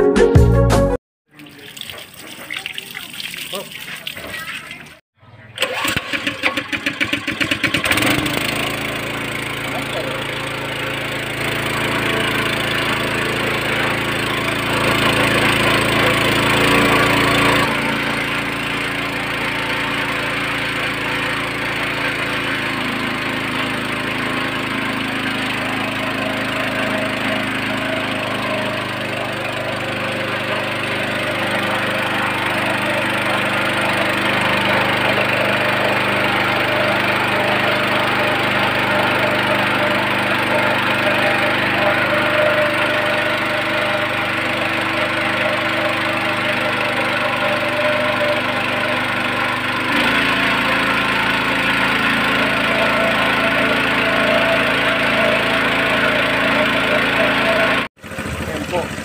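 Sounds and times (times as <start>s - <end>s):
water splashing: 1.3s - 5.0s
small engine water pump running: 1.3s - 59.0s.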